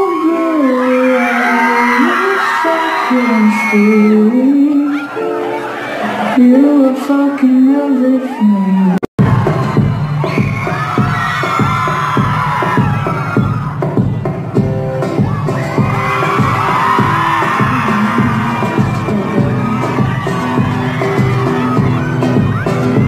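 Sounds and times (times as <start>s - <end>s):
crowd noise: 0.0s - 23.0s
live band music: 12.9s - 23.0s.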